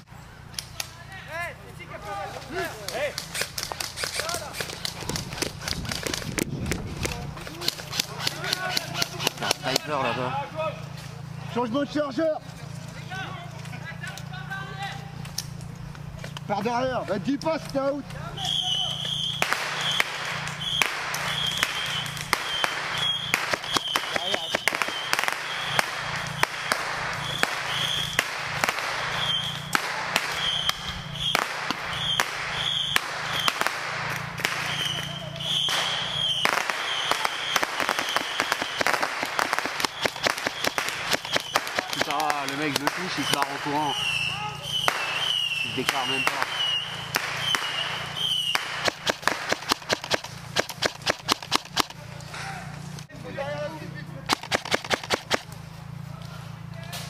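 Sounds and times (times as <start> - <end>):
players' voices: 0.1 - 48.9, 51.7 - 54.5, 55.3 - 57.0
airsoft gunfire cracks: 18.5 - 52.0, 54.3 - 55.5.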